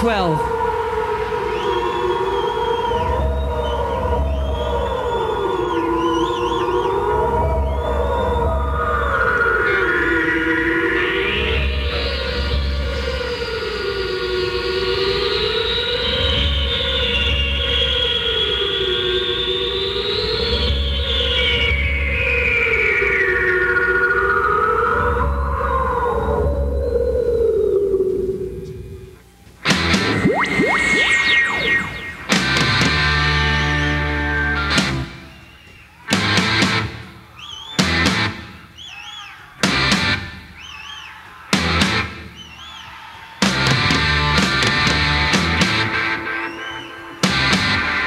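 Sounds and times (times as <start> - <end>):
swooping synthesizer tones: 0.0 - 35.5
high whining synth layer: 29.7 - 35.4.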